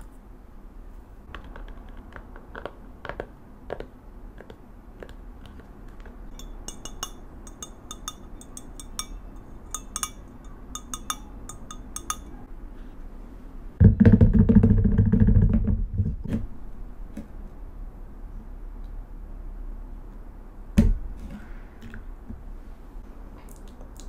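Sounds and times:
ceramic and glass clinking: 6.3s - 12.4s.

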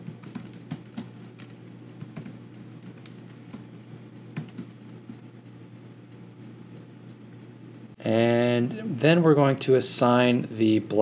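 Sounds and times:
computer keyboard typing: 0.0s - 5.3s
steady low hum: 0.0s - 11.0s.

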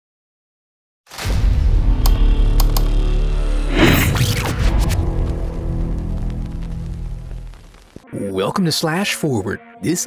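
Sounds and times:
low drone: 1.7s - 7.7s
sharp clicks: 2.0s - 3.0s
noisy swish: 3.1s - 5.1s.

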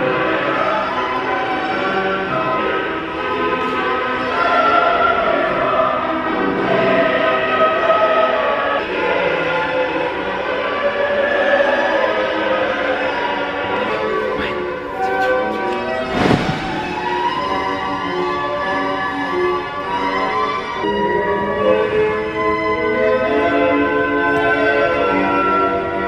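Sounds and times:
choir singing long notes: 0.0s - 26.0s
short rushing sweep: 15.6s - 17.7s.

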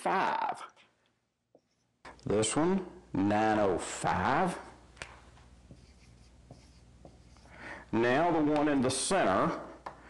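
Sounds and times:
marker writing on whiteboard: 5.6s - 7.6s.

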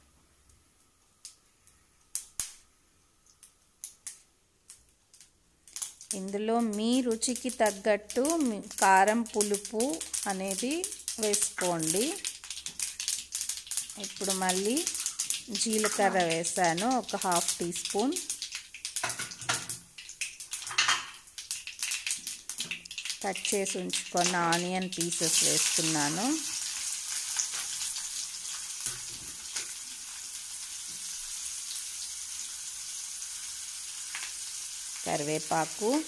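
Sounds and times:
sharp clicks and pops: 3.2s - 25.1s
seeds sizzling in hot oil: 3.3s - 36.0s.

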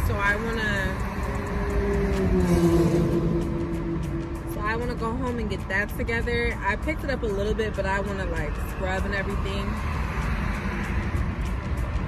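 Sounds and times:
music playing: 0.0s - 12.0s
road noise: 0.0s - 12.0s.

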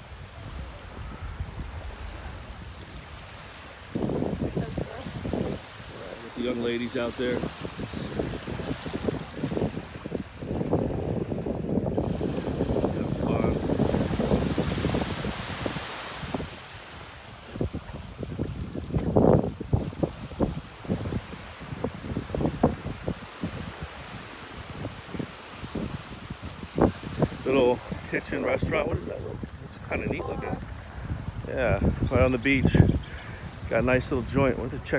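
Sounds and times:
small waves lapping: 0.0s - 34.9s
wind buffeting microphone: 0.0s - 34.9s.

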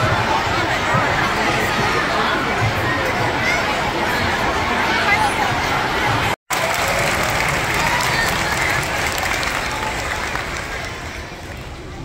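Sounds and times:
crowd chatter: 0.0s - 12.0s
audience applause: 6.5s - 11.4s.

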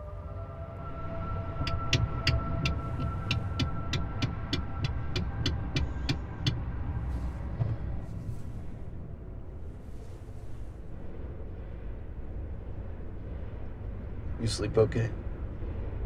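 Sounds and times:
ambulance engine rumble: 0.0s - 11.5s
sharp even ticking: 1.6s - 6.7s.

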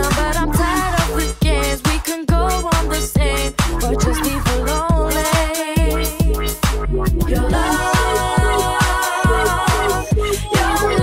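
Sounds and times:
bassline dance track: 0.0s - 11.0s.

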